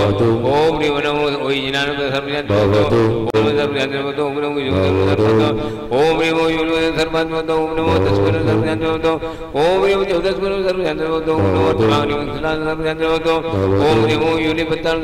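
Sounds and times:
man chanting into a microphone: 0.0s - 15.0s.

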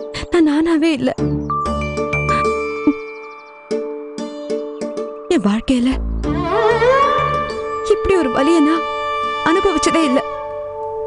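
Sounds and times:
bell-like chimes: 1.6s - 3.7s.

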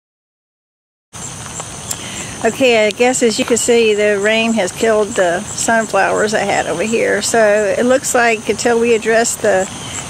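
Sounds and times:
outdoor background noise: 1.2s - 10.0s
small ticks: 1.3s - 3.7s
faint high steady tone: 1.8s - 10.0s.

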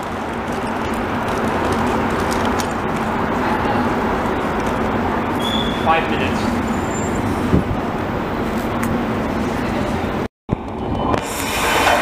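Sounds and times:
metro train pulling out: 3.1s - 12.0s.

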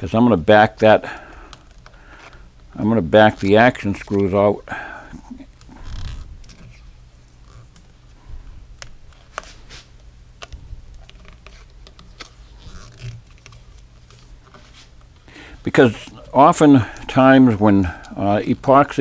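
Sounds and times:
low steady hum: 0.0s - 19.0s.

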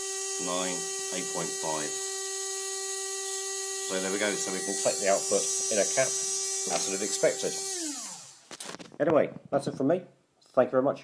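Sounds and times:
electric motor whine: 0.0s - 8.8s.

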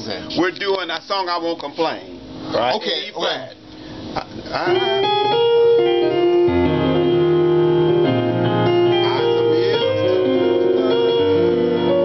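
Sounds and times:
piano gospel chords: 2.2s - 12.0s.

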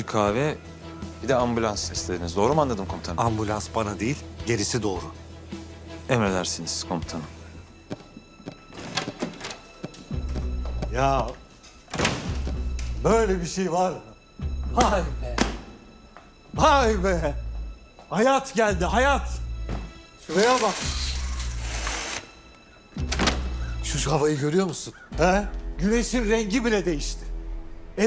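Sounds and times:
score music with low drone: 0.0s - 28.0s.

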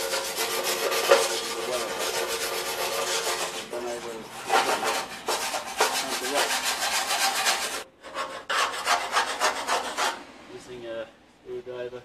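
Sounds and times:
wire brush scrubbing metal: 0.0s - 10.2s.

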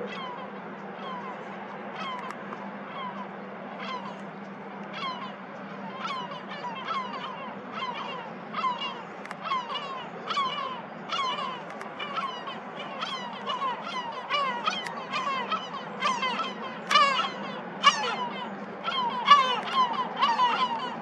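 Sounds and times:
birds calling: 0.0s - 21.0s
low steady hum: 0.0s - 21.0s.

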